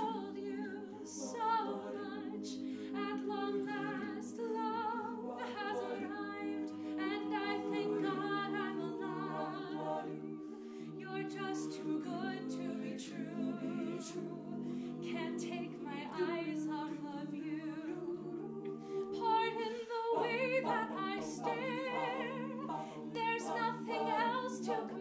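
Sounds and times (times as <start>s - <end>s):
a cappella choir singing: 0.0s - 25.0s.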